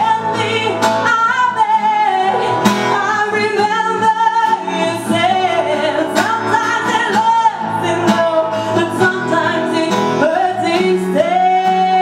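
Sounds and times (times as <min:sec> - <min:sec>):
strummed acoustic guitar: 0:00.0 - 0:12.0
woman singing: 0:00.0 - 0:12.0.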